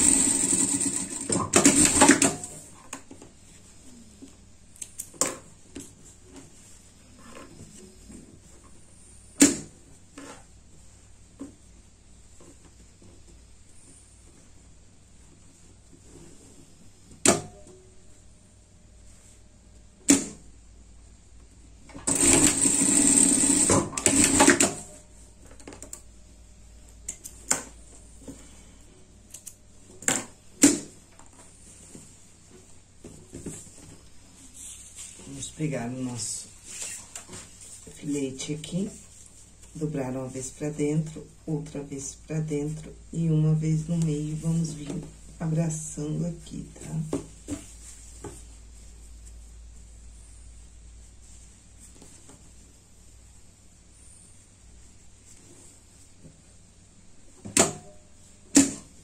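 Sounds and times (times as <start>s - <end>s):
sewing machine stitching: 0.0s - 2.6s, 22.0s - 24.9s.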